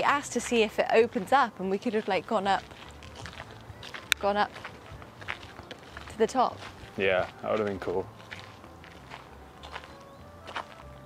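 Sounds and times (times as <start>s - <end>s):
faint background music: 0.0s - 11.0s
footsteps on gravel: 0.0s - 11.0s.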